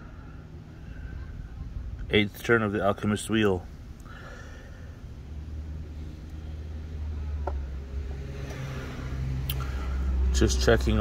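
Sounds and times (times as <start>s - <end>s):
low engine rumble: 0.0s - 11.0s.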